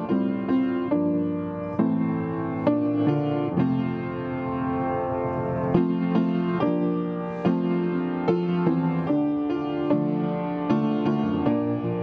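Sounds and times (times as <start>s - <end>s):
instrumental hymn accompaniment: 0.0s - 12.0s.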